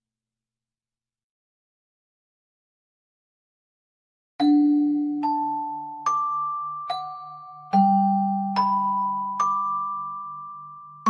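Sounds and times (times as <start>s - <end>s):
music box lullaby: 4.4s - 11.0s.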